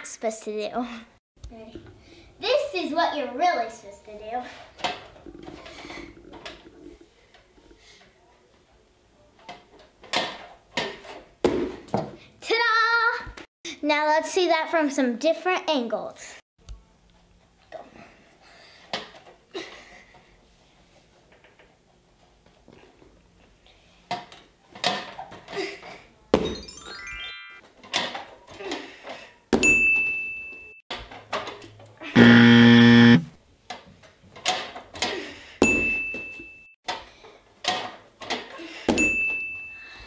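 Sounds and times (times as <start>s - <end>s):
short high dings: 29.6s - 30.8s, 35.6s - 36.7s, 39.0s - 40.0s
falling run of notes: 32.2s - 33.3s
loud buzz: 32.2s - 33.3s.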